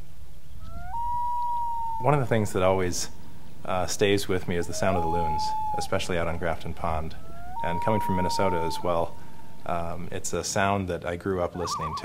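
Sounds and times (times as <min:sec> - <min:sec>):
loon wailing call: 0:00.6 - 0:10.3, 0:11.6 - 0:12.0.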